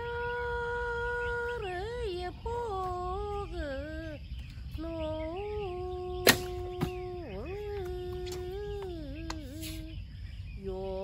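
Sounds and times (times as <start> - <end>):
person singing long notes: 4.8 - 11.0.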